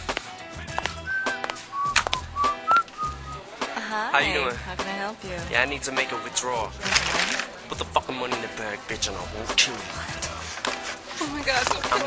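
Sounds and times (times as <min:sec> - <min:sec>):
hip-hop beat: 0:00.0 - 0:04.9
man whistling: 0:01.0 - 0:03.4
woman's voice: 0:11.2 - 0:12.0.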